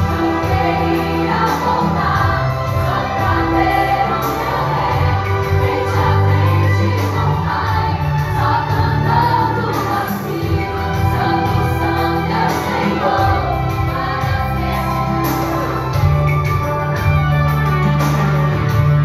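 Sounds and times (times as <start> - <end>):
young female voices singing: 0.0 - 16.0
backing music with bass line: 0.0 - 19.0.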